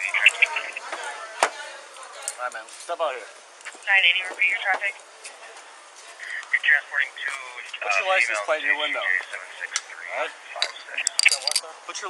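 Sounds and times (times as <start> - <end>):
handcuffs clinking: 10.6 - 11.6
sharp metallic clicks: 10.6 - 11.6.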